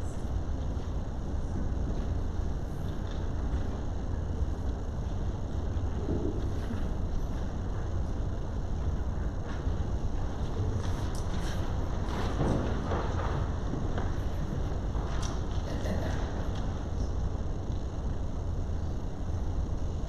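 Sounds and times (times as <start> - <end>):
low room rumble: 0.0 - 20.0.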